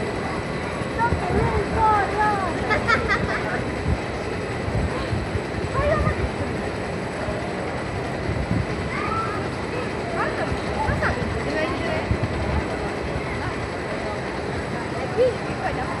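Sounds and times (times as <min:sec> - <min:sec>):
roller coaster train rumbling: 0:00.0 - 0:16.0.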